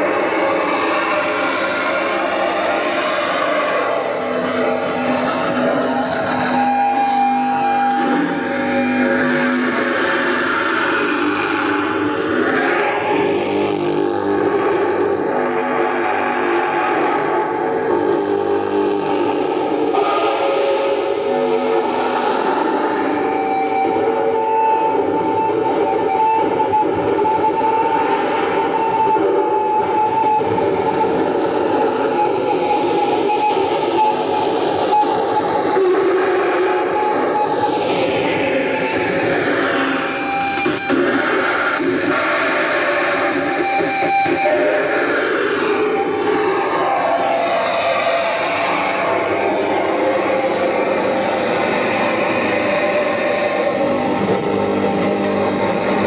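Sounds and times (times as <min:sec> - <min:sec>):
distorted noise music: 0:00.0 - 0:56.0
whining tones: 0:00.0 - 0:56.0.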